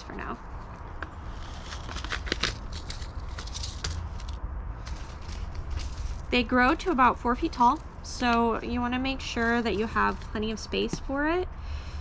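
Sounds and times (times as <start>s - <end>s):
paper packet crackling and rustling: 0.0s - 8.0s, 9.1s - 10.5s
steady low rumble: 0.0s - 12.0s.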